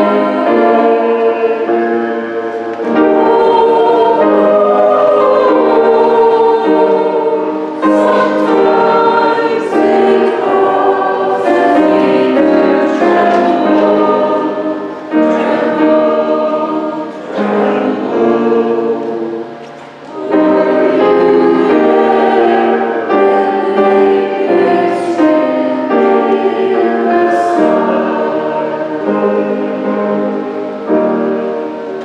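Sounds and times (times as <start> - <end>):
choir singing a hymn: 0.0 - 32.0.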